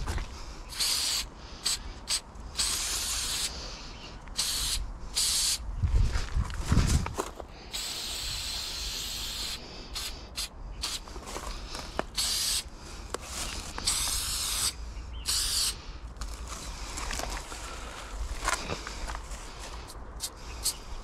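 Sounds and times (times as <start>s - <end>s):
aerosol spray can hissing: 0.7s - 3.6s, 4.4s - 5.6s, 7.7s - 11.0s, 12.0s - 12.7s, 13.8s - 15.8s.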